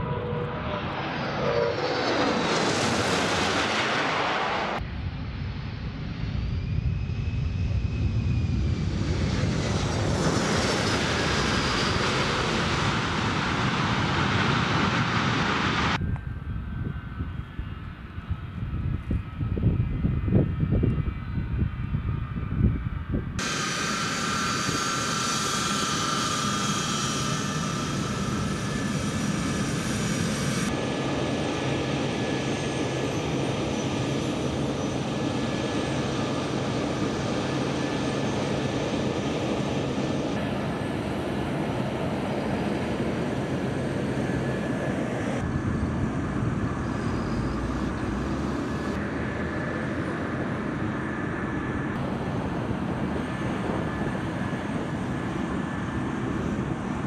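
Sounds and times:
gusty rumble: 0.0 - 25.5
jet engine whine: 0.0 - 57.0
jet engines roaring: 0.0 - 57.0.

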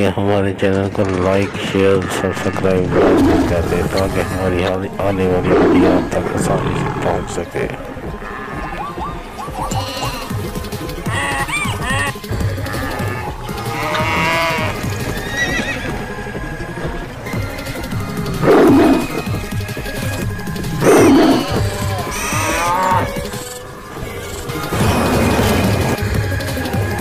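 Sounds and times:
background music: 0.0 - 27.0
animal calls: 1.1 - 27.0
cattle mooing: 2.3 - 15.9, 17.3 - 26.0.

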